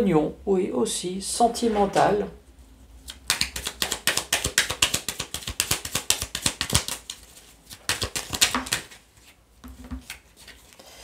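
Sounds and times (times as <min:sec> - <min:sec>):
cards being shuffled: 0:03.0 - 0:10.8.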